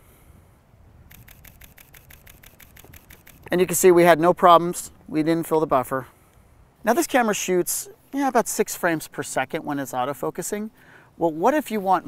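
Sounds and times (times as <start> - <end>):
rapid camera shutter clicks: 1.1 - 3.8.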